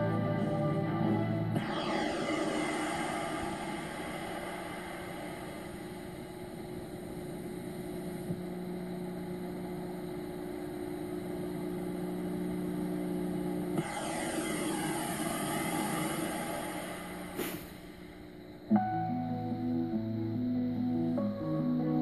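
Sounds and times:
jet-like droning rumble: 0.0s - 18.8s
rushing sound with sweeping pitch: 1.6s - 6.6s.

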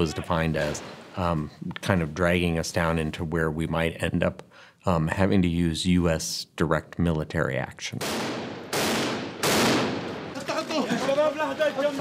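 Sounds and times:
gunshots ringing out: 8.0s - 10.6s.

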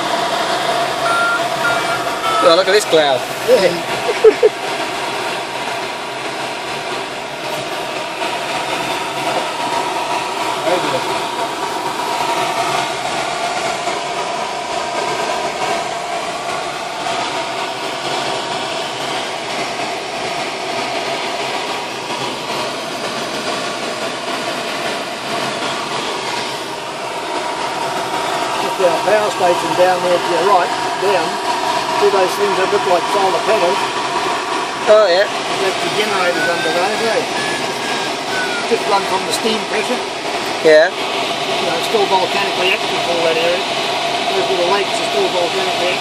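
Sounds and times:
faint steady whistle: 1.0s - 2.8s, 35.8s - 39.3s.

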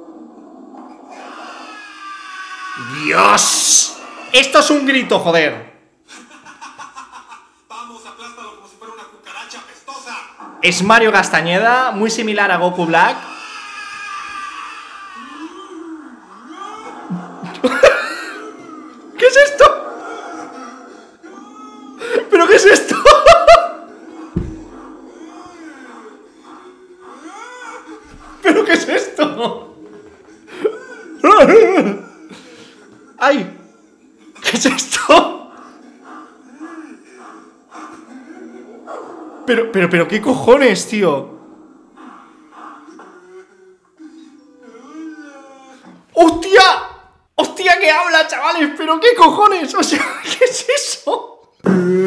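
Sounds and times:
cartoon ape roar: 0.8s - 5.1s, 10.4s - 29.4s
man laughing loudly: 6.1s - 7.6s, 17.4s - 18.6s, 22.0s - 23.9s, 28.4s - 29.7s, 30.5s - 32.0s.

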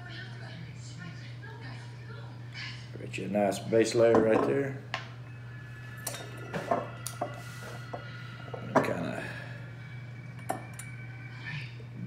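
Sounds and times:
glass and metal clinks: 6.0s - 7.3s.

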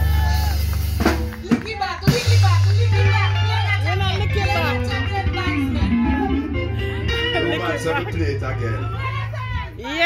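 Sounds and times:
live band playing: 0.0s - 10.0s
sustained bass guitar line: 0.0s - 10.0s.

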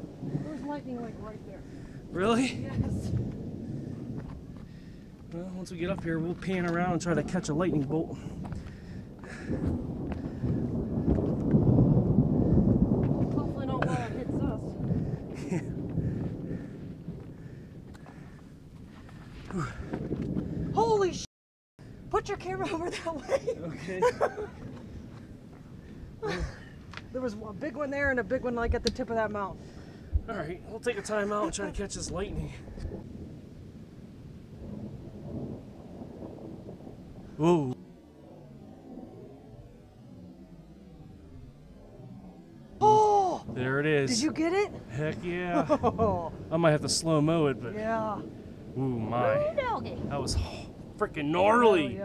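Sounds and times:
thunder rolling: 0.0s - 52.0s.

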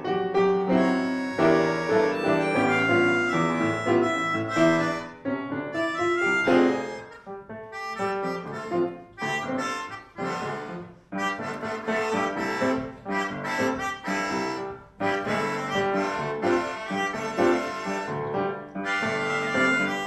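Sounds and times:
melodica melody: 0.0s - 20.0s
piano accompaniment: 0.0s - 20.0s.

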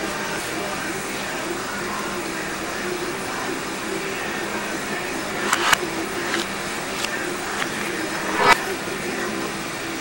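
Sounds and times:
sharp clicks: 5.3s - 8.6s.

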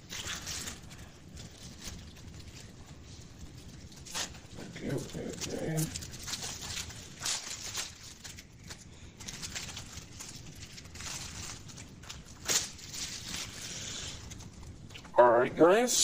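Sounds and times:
plastic wrap crinkling: 0.0s - 16.0s.

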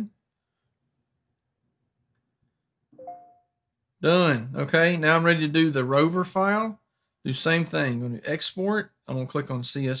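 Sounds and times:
electronic chime: 3.0s - 3.6s.

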